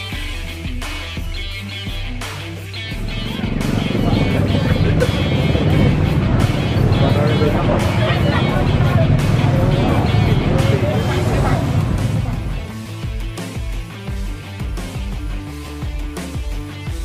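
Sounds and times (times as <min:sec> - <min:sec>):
background music: 0:00.0 - 0:17.0
motorcycle engines running: 0:03.0 - 0:12.7
crowd talking: 0:03.2 - 0:12.7.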